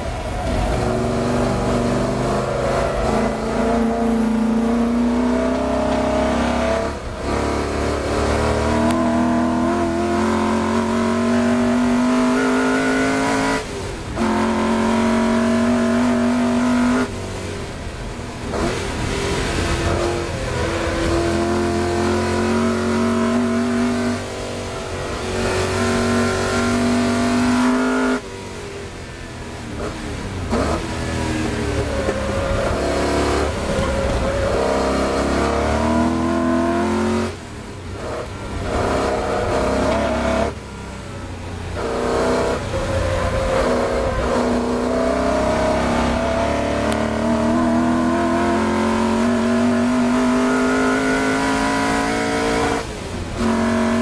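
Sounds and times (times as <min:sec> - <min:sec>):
car engine accelerating hard: 0:00.0 - 0:54.0.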